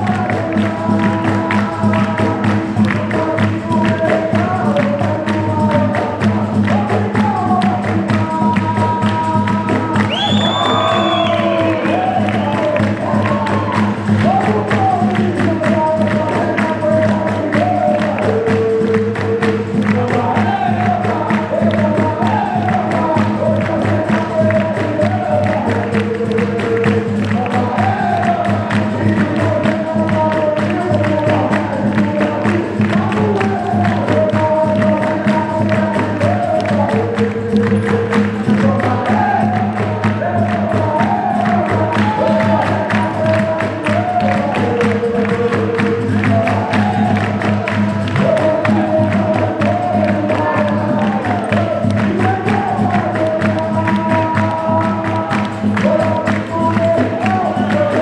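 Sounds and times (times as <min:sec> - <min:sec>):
group singing with instruments: 0:00.0 - 0:58.0
people clapping in time: 0:00.0 - 0:58.0.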